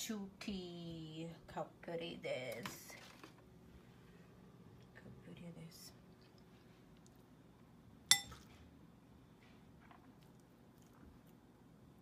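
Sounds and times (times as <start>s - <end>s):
metal spoon clinking on dish: 8.1s - 8.5s.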